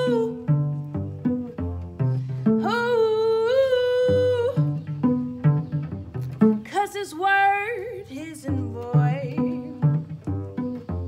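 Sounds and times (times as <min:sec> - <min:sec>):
woman singing long wordless note: 0:00.0 - 0:00.6, 0:02.6 - 0:04.8
pizzicato cello notes: 0:00.0 - 0:11.0.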